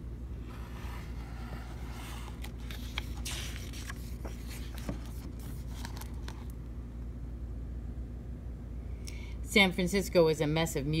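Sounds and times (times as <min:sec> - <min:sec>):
paper rustling: 0:00.5 - 0:06.6.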